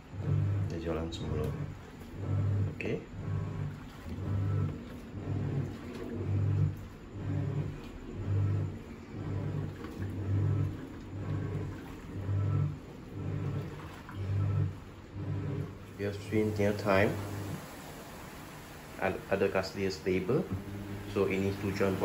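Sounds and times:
washing machine motor humming: 0.0s - 22.0s.

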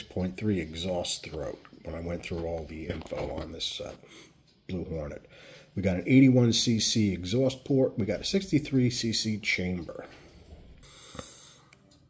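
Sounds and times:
soft breath: 5.3s - 5.8s.

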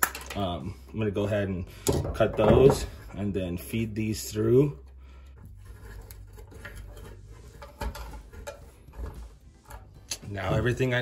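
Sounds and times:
cable rubbing and scraping: 4.4s - 11.0s.

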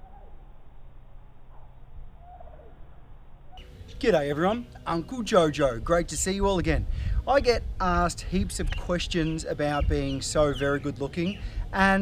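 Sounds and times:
faint bird calls: 0.0s - 0.5s, 1.5s - 4.0s
steady low rumble: 0.4s - 12.0s.

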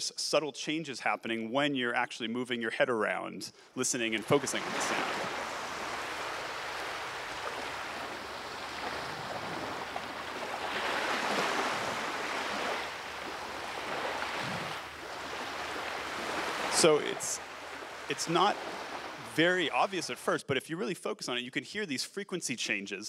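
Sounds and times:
ocean waves breaking: 4.0s - 20.2s.

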